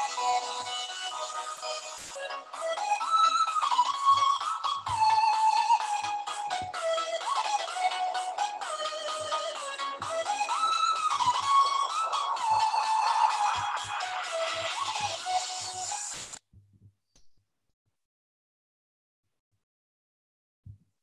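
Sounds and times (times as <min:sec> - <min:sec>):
background music with melody: 0:00.0 - 0:16.2.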